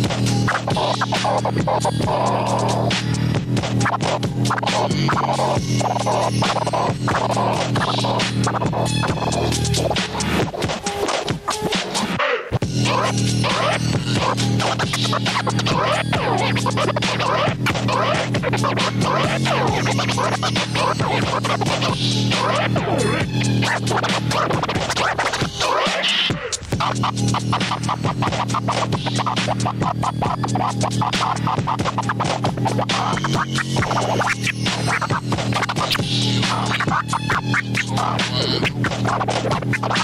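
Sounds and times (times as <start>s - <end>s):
hip-hop beat with bass line: 0.0s - 40.0s
vinyl record scratching: 0.0s - 40.0s.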